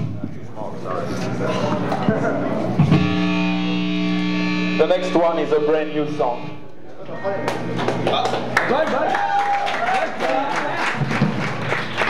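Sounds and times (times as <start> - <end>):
distorted electric guitar: 2.6 - 6.8.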